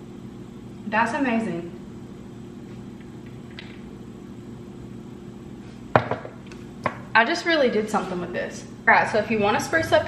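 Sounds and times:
low room hum: 0:00.0 - 0:10.0
glass jar set down on counter: 0:05.9 - 0:07.0.

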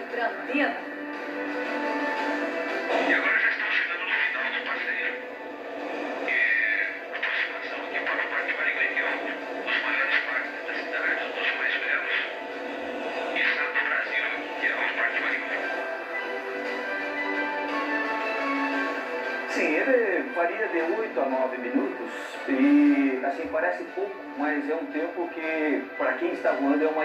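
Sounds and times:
background music through tv speaker: 0:00.0 - 0:27.0.

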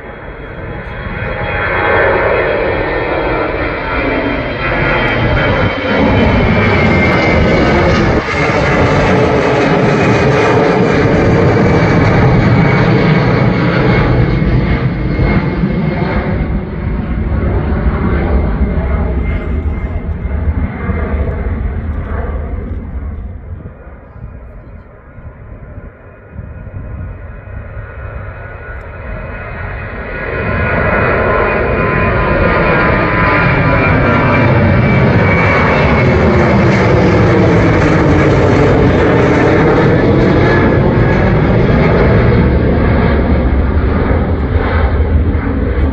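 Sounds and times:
jet engines whining overhead: 0:00.0 - 0:45.9.

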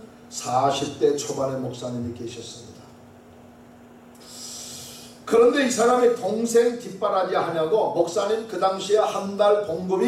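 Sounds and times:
faint steady hum: 0:00.0 - 0:10.0
man speaking: 0:00.3 - 0:02.8, 0:05.3 - 0:10.0
man breathing in: 0:04.2 - 0:05.2.

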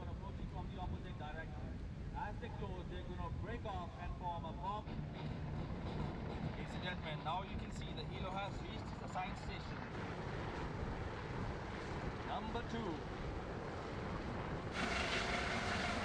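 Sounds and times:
wind over open water: 0:00.0 - 0:16.0
boat motors rumbling: 0:04.6 - 0:16.0.

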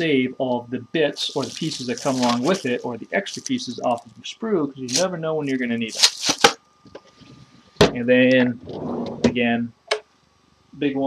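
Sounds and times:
plastic bags rustling: 0:01.2 - 0:04.1, 0:04.9 - 0:06.6.

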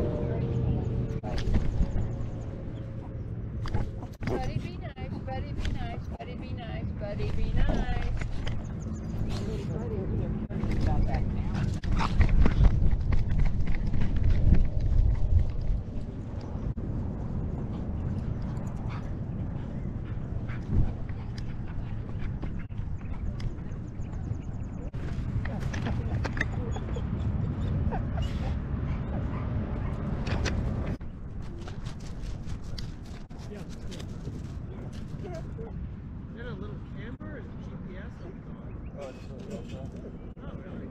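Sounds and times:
wind rumble: 0:00.0 - 0:40.9
dogs yipping and whimpering: 0:25.4 - 0:30.0.

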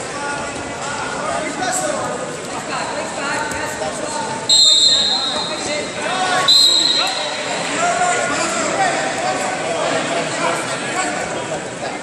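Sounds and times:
voices in a hall: 0:00.0 - 0:12.0
shrill whistle blasts: 0:04.5 - 0:05.8, 0:06.4 - 0:07.5.

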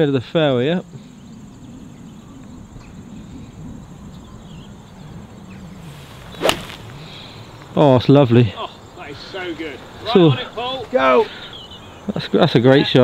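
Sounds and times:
faint outdoor background: 0:00.0 - 0:13.0
golf club striking ball: 0:06.1 - 0:07.3.

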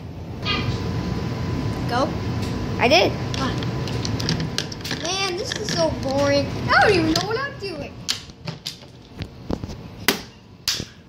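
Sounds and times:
plastic toy pieces clicking: 0:03.4 - 0:06.2.

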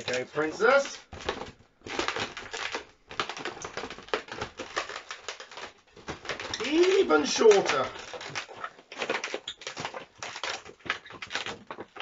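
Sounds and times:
balloons creaking and crackling: 0:00.0 - 0:12.0.

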